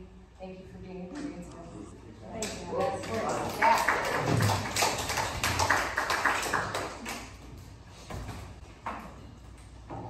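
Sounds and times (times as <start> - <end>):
scattered applause: 2.7 - 7.4.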